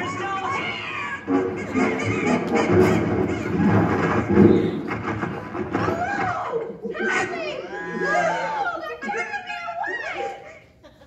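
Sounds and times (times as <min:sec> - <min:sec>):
loud film music over loudspeakers: 0:00.0 - 0:06.8.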